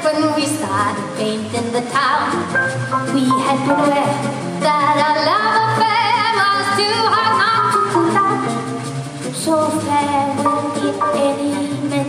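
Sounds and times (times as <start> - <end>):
woman singing: 0.0 - 2.4, 3.1 - 8.7, 9.3 - 12.0
acoustic guitar: 0.0 - 12.0.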